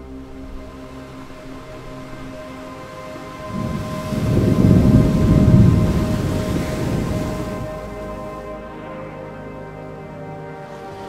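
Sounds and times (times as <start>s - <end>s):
background music with sustained tones: 0.0s - 11.0s
ocean wave breaking: 3.2s - 8.4s.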